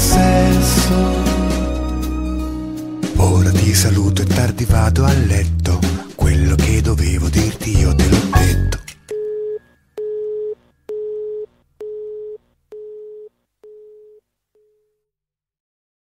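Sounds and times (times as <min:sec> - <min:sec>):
song music: 0:00.0 - 0:09.1
telephone busy tone beeps: 0:09.1 - 0:14.7.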